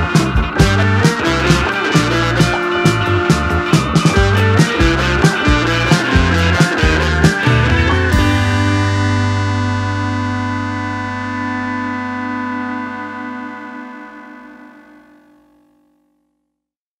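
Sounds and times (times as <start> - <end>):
rock song chord ringing: 0.0 - 15.5.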